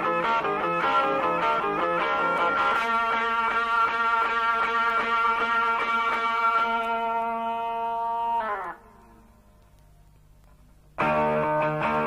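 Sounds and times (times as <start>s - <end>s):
faint low hum: 6.6s - 11.9s.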